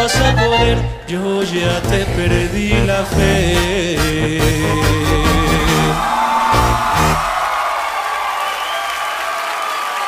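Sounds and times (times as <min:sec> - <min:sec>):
live band closing hits: 0:01.4 - 0:07.6
audience applause and cheering: 0:03.1 - 0:10.0.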